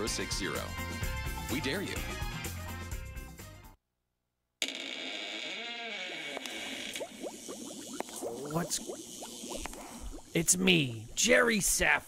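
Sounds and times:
quick rising bubbling blips: 6.4s - 11.8s.

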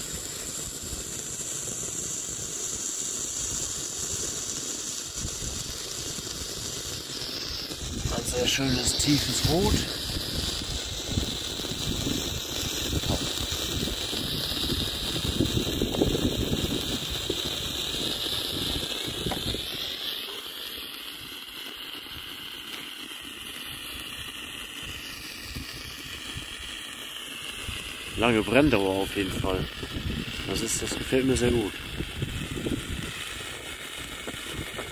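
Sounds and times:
flare burning with hiss: 0.0s - 34.9s
wind rumble on microphone: 7.8s - 17.6s, 18.5s - 19.7s, 25.5s - 26.5s, 27.6s - 33.3s, 34.0s - 34.9s.

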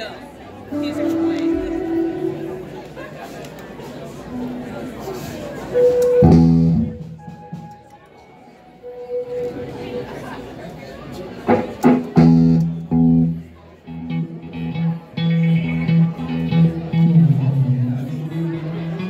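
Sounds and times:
electric guitar playing: 0.7s - 3.3s, 4.3s - 7.9s, 11.5s - 19.0s.

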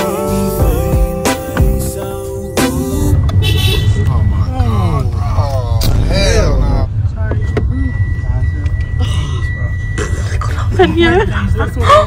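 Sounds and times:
car cabin road rumble: 3.2s - 12.0s
people talking: 4.0s - 12.0s.

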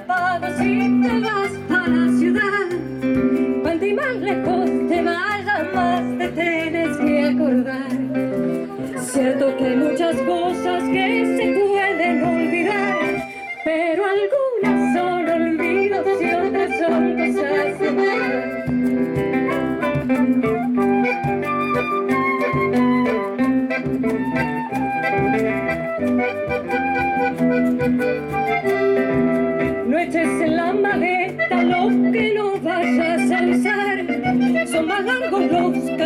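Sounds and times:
woman singing folk song: 0.0s - 24.3s, 29.0s - 36.0s
acoustic guitars: 0.0s - 36.0s
flute: 8.6s - 36.0s.

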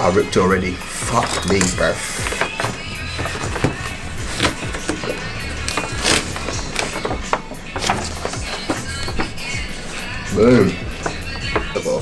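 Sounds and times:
background music: 0.0s - 12.0s
stiff paper crackling: 0.9s - 11.9s.

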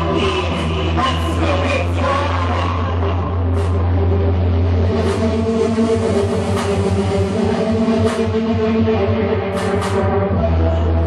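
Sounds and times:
bass drone: 0.0s - 11.0s
dark electronic music: 0.0s - 11.0s.

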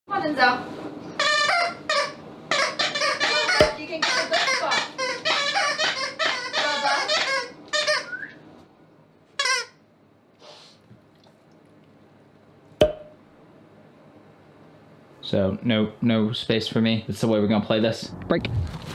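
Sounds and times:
dog whining and squealing: 1.2s - 8.3s.

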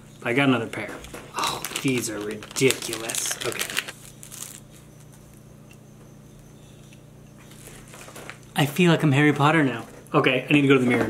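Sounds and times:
steady low hum: 0.0s - 11.0s
plastic wrapping crinkling: 1.3s - 5.2s.

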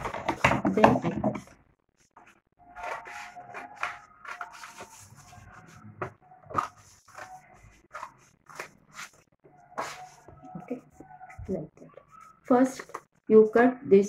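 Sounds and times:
paper rustling: 2.0s - 5.8s, 6.5s - 10.4s.

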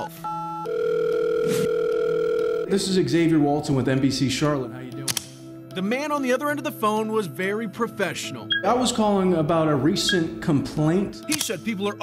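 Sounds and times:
phone ringback tone: 0.0s - 2.7s
phone keypad tone: 0.2s - 2.7s.

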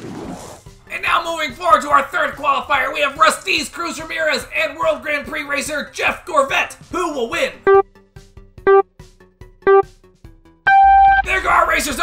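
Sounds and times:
short electronic beep: 9.7s - 9.9s, 10.7s - 11.3s
long high-pitched beep: 10.7s - 11.3s.

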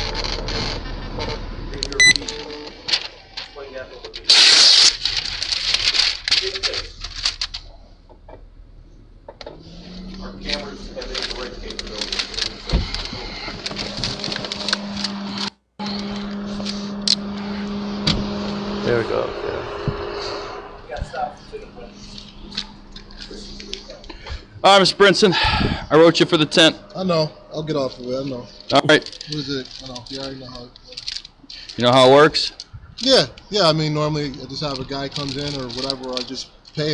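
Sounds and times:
low murmur and hum: 0.0s - 36.9s.

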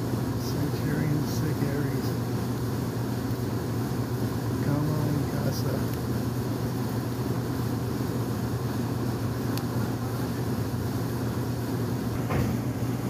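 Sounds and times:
machinery droning: 0.0s - 13.0s.

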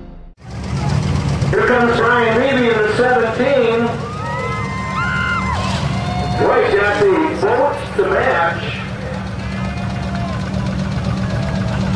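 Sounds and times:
low engine rumble: 0.4s - 11.9s
man announcing over loudspeaker: 1.5s - 4.1s, 6.3s - 9.2s.

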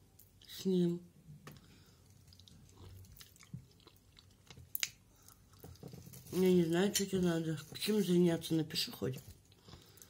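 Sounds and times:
close-up chewing and mouth sounds: 1.6s - 7.9s, 9.2s - 10.0s.

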